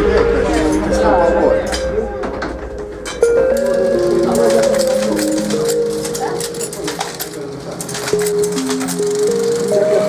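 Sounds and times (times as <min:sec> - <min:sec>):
background music note: 0:00.0 - 0:10.0
typesetting machine clicking: 0:03.4 - 0:10.0.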